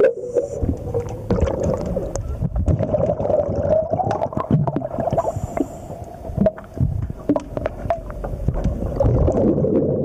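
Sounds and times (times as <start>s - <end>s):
underwater bubbling: 0.0s - 10.0s
underwater wavering hum: 0.0s - 10.0s.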